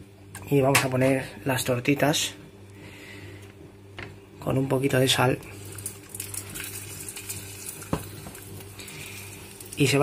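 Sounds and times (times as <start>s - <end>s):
patty sizzling in frying pan: 5.5s - 10.0s.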